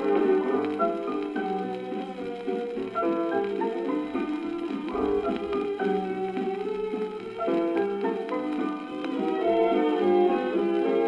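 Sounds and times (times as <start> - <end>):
old shellac disc sound: 0.0 - 11.0.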